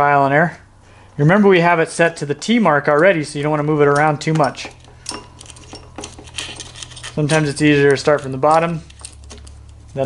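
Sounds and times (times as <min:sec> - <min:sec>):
metal chain clicking on sprocket: 0:04.0 - 0:09.8.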